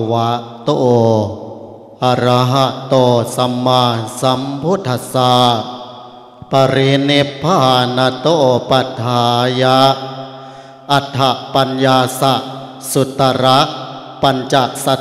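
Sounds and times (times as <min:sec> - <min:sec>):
man chanting into a microphone: 0:00.0 - 0:15.0.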